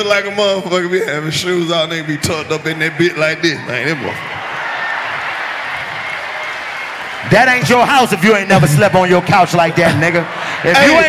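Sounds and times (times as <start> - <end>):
audience applauding: 1.4 - 11.0.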